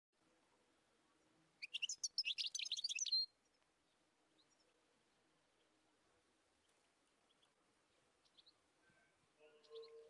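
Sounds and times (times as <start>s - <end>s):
songbird chirping song: 0.2s - 10.0s.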